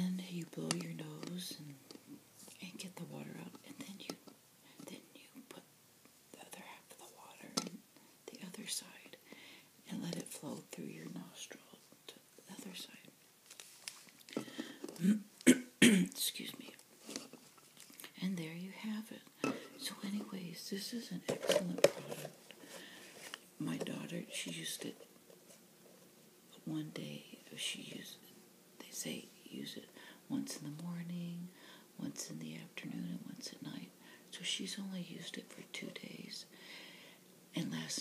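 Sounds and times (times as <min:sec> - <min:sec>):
person whispering: 0:02.5 - 0:04.2, 0:06.4 - 0:07.7, 0:08.3 - 0:09.1, 0:09.9 - 0:13.1, 0:19.8 - 0:22.3, 0:23.6 - 0:25.0.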